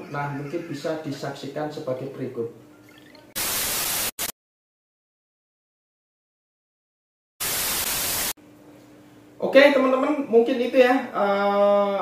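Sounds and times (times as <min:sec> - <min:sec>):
tv static hiss: 0:03.4 - 0:04.3, 0:07.4 - 0:08.4.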